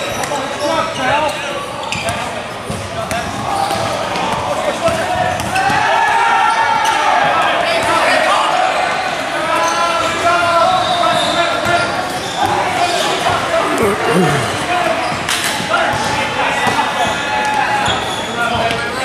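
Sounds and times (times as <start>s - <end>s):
indistinct echoing voices: 12.4s - 16.4s.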